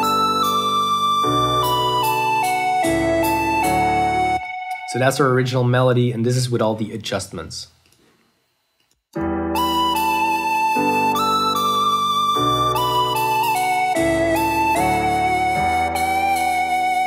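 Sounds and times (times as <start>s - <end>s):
synth lead melody: 0.0s - 5.2s, 9.2s - 17.0s
keyboard chords and bass: 0.0s - 5.5s, 9.2s - 17.0s.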